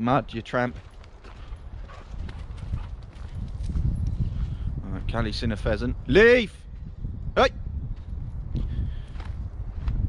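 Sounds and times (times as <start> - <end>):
footsteps on muddy track: 0.1 - 5.2, 7.9 - 10.0.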